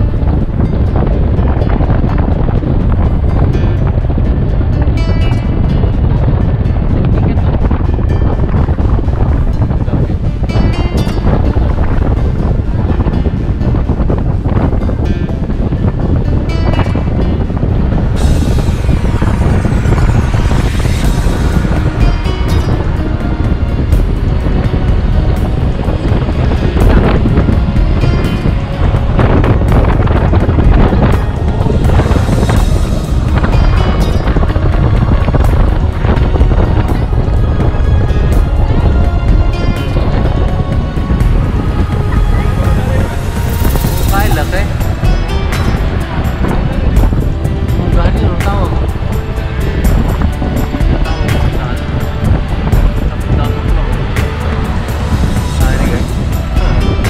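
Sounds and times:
background music: 0.0 - 57.0
car driving rumble: 0.0 - 57.0.

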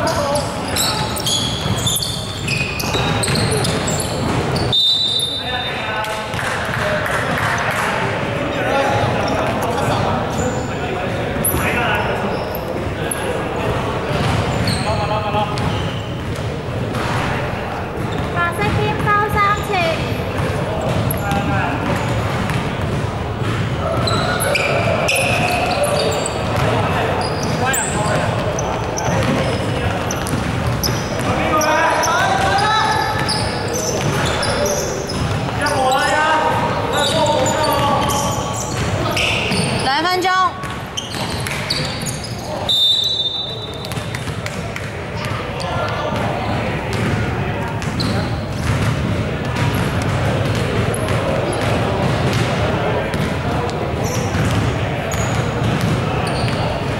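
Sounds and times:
players shouting and chatting: 0.0 - 56.9
basketball bouncing on hardwood: 29.1 - 29.5, 47.8 - 53.3, 55.3 - 56.6.

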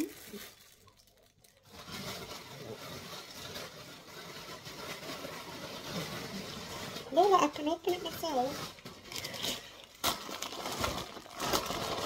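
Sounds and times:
rustling and handling noise: 0.0 - 12.0.

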